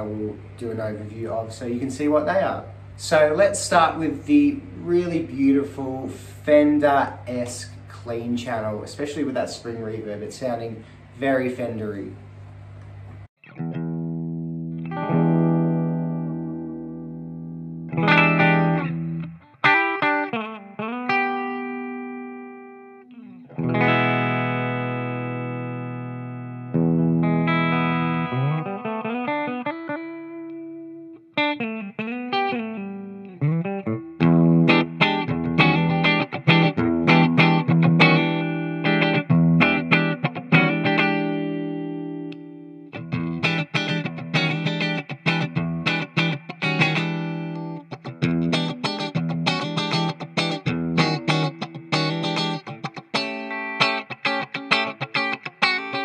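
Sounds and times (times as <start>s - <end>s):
clean electric guitar with reverb: 13.4s - 56.0s.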